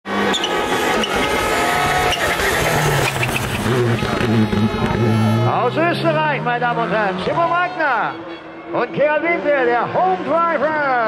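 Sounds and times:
distant rally car engine: 0:00.1 - 0:11.0.

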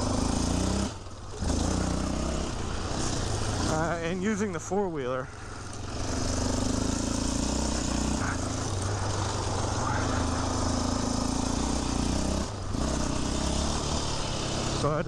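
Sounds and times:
quad engine revving: 0:00.0 - 0:15.0.

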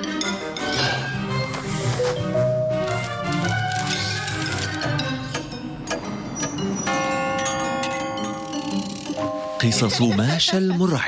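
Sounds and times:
spooky music: 0:00.0 - 0:11.0
clock chime: 0:06.4 - 0:10.3.

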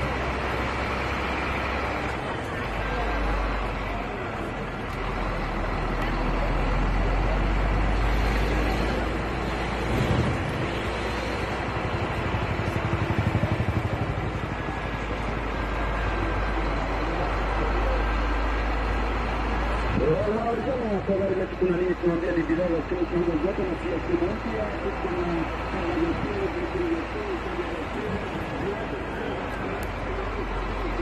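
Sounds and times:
vehicle engine rumble: 0:00.0 - 0:31.0.

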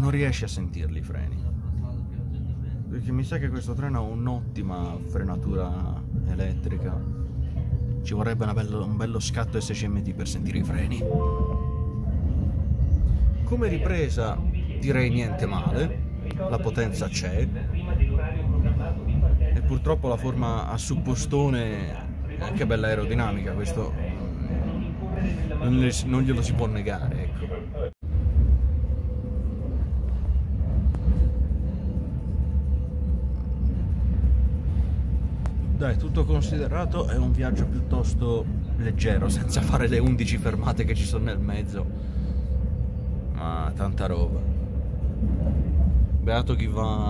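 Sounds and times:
faint steady whine: 0:00.0 - 0:47.0
train running rumble: 0:00.0 - 0:47.0
high steady tones chord: 0:10.9 - 0:12.8.

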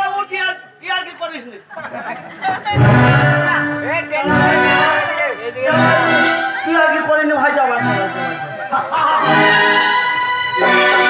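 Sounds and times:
live band music: 0:02.7 - 0:11.0
held notes on melody instrument: 0:02.8 - 0:11.0.

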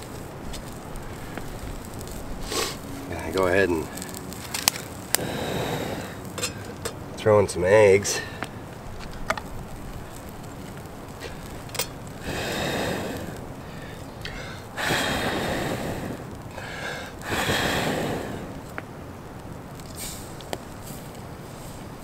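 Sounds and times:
person blowing on coals: 0:00.0 - 0:06.8, 0:11.2 - 0:18.8.

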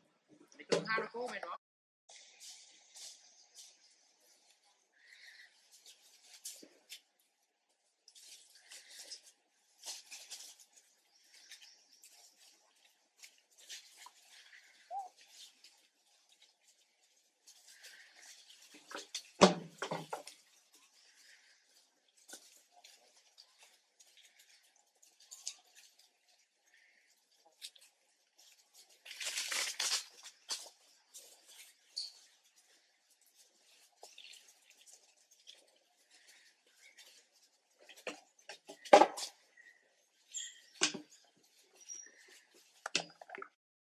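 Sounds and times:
rustling in dry leaves: 0:02.1 - 0:42.8.

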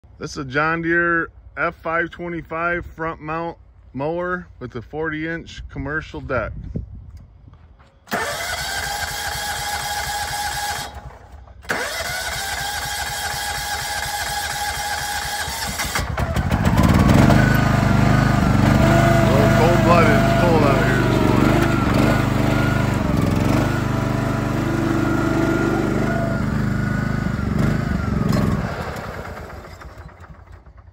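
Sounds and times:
mower engine running: 0:08.1 - 0:30.9.

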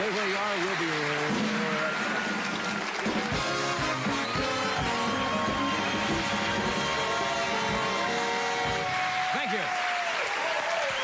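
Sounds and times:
big band brass tune: 0:01.3 - 0:09.3
steady drum beat: 0:02.9 - 0:09.2.

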